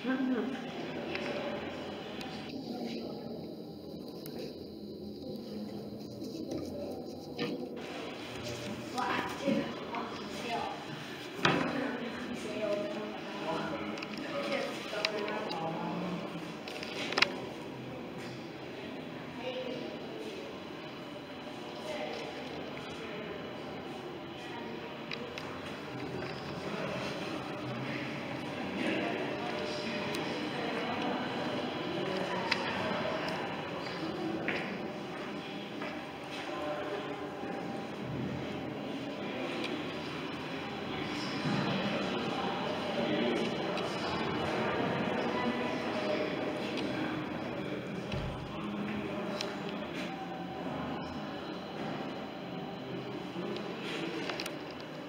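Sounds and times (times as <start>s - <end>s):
indistinct chatter: 0.0s - 55.0s.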